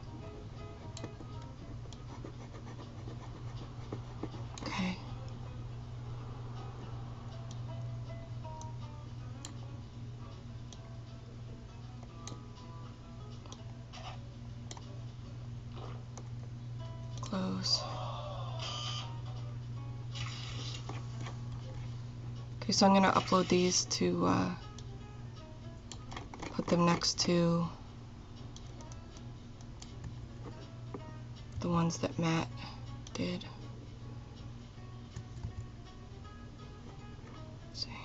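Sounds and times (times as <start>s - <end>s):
faint background music: 0.0s - 38.0s
steady low hum: 0.0s - 38.0s
computer mouse clicks and scratching: 0.8s - 4.9s, 25.9s - 27.2s, 35.1s - 35.7s.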